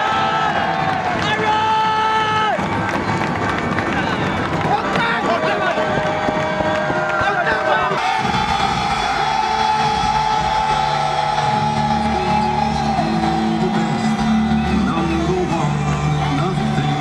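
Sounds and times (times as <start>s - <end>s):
crowd shouting and cheering: 0.0s - 17.0s
music with steady bass: 7.9s - 17.0s.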